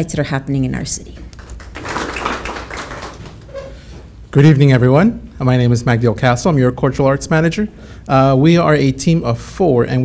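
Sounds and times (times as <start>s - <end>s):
light scattered clapping: 1.2s - 3.5s.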